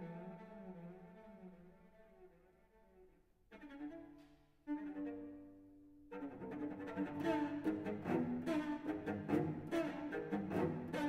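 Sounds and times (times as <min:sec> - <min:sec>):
solo cello playing: 0:00.0 - 0:11.0.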